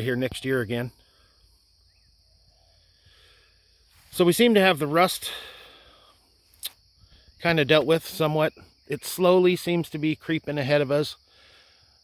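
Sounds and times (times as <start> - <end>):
faint bird chirp: 0.0 - 4.2
steady high-pitched hiss: 0.0 - 12.0.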